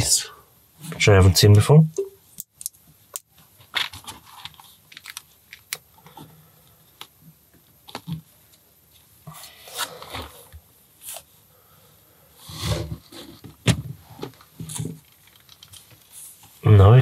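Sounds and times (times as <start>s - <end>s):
rustling and scraping of pieces: 2.5s - 7.2s, 7.8s - 11.3s, 12.4s - 16.6s.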